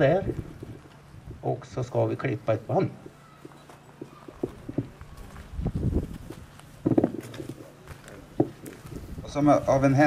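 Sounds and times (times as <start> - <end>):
footsteps on wooden boards: 3.4 - 9.2.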